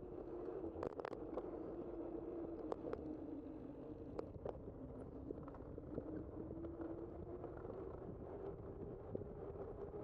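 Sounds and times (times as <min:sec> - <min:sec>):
wind noise on microphone: 0:04.2 - 0:10.0.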